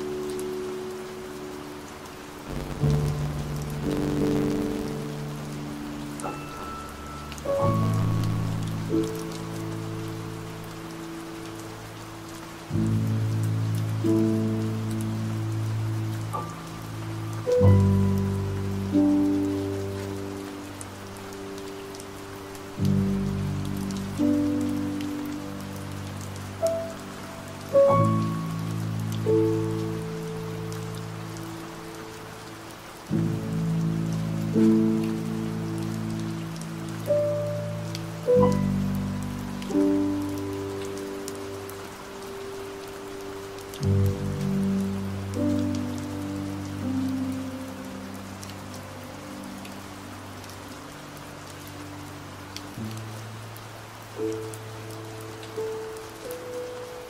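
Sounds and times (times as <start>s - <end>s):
rain: 0.0s - 57.0s
soft piano music: 0.0s - 57.0s.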